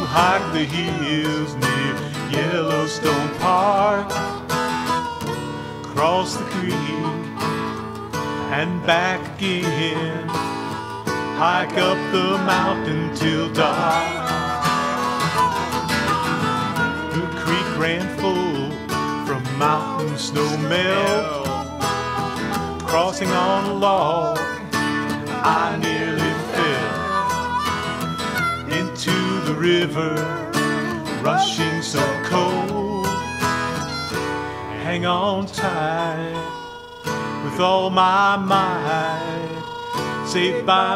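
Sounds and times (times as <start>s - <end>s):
person singing: 0.0s - 33.8s, 34.7s - 40.9s
acoustic guitar strumming: 0.0s - 40.9s.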